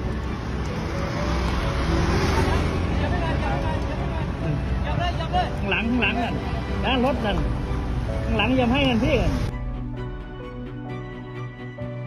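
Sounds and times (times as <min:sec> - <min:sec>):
road traffic rushing: 0:00.0 - 0:12.0.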